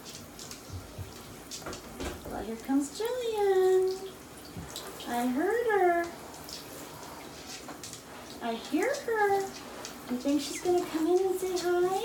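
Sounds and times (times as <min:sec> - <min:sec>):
shower spraying water into bathtub: 0:00.0 - 0:12.0.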